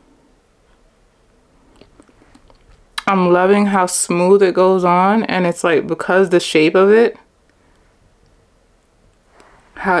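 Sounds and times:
wet lip and mouth clicks: 0:01.7 - 0:03.1.

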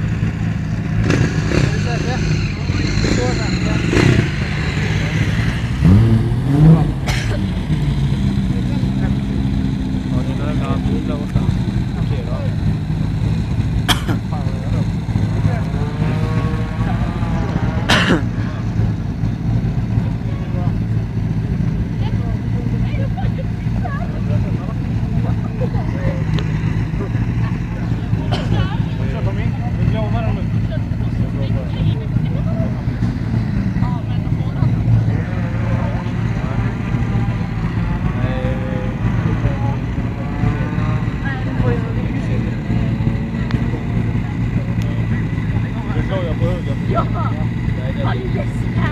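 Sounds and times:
car engines idling: 0:00.0 - 0:48.9
people talking: 0:01.0 - 0:13.3, 0:13.9 - 0:48.9.

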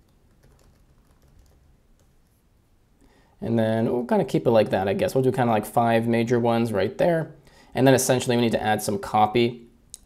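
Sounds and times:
faint keyboard typing: 0:00.0 - 0:02.4.

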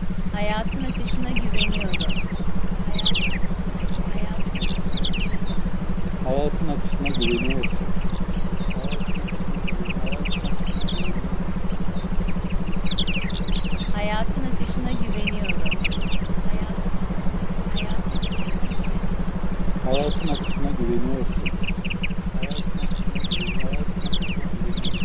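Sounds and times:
low pulsing drone: 0:00.0 - 0:25.0.

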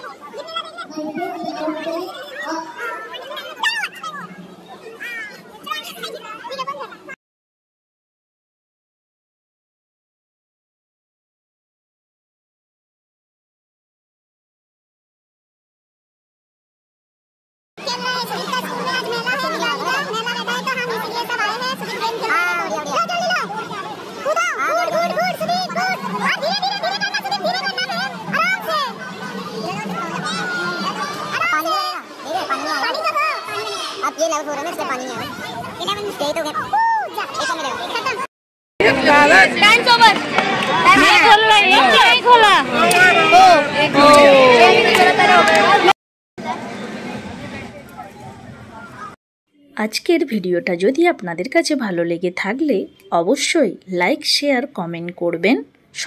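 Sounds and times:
children talking and calling out: 0:00.0 - 0:07.2, 0:17.8 - 0:56.0.

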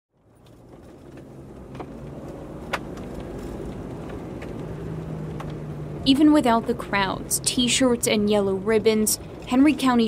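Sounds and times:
vehicle motor rumble: 0:00.2 - 0:10.0.

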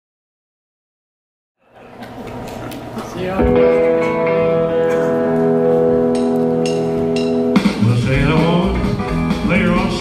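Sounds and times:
sustained guitar chord: 0:03.4 - 0:09.2.

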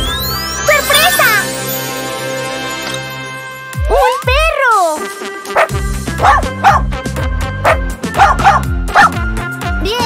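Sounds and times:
cheerful children's music: 0:00.0 - 0:10.0
cartoon puppy yipping: 0:07.7 - 0:09.2.

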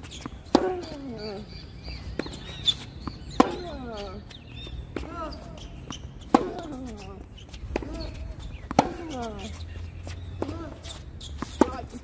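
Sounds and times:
tennis racket hitting ball: 0:00.4 - 0:01.1, 0:03.3 - 0:04.1, 0:06.3 - 0:09.5, 0:10.4 - 0:12.0.

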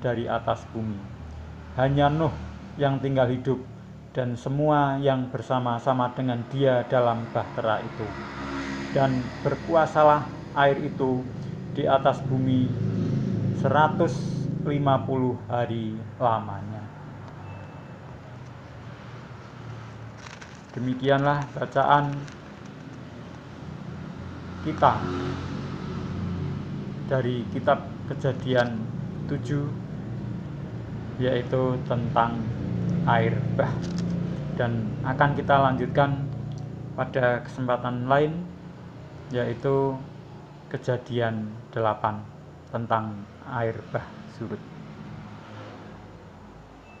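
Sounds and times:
faint thin high tone: 0:17.4 - 0:18.0.

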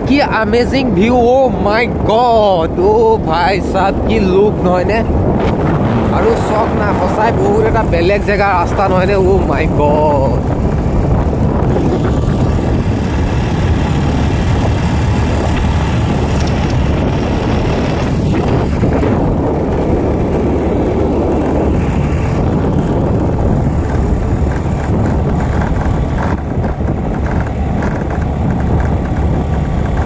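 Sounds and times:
scooter motor and tyres: 0:00.0 - 0:30.0
wind buffeting microphone: 0:00.0 - 0:30.0.

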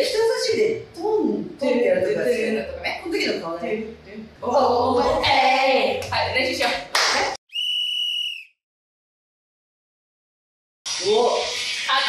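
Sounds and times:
high whistle blast: 0:07.5 - 0:08.6.

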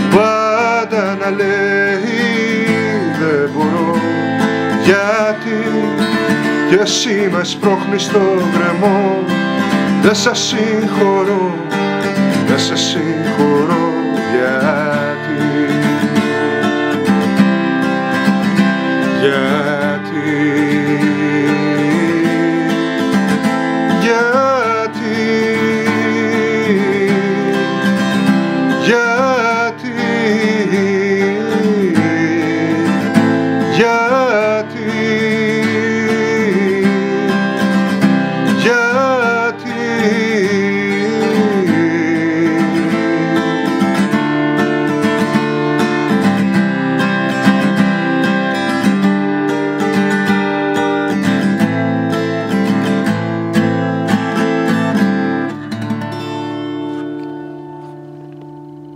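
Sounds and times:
acoustic guitar strumming chords: 0:00.0 - 0:58.9.

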